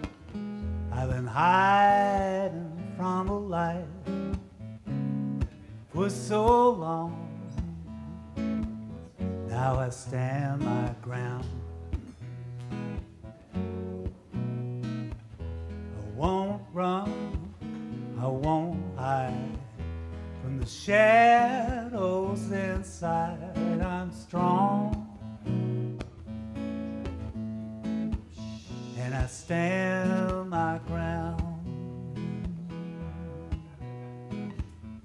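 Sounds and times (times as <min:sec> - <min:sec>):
acoustic guitar: 0:00.0 - 0:35.0
man singing: 0:00.8 - 0:04.5, 0:05.8 - 0:08.4, 0:09.2 - 0:11.8, 0:15.9 - 0:25.4, 0:28.3 - 0:33.9.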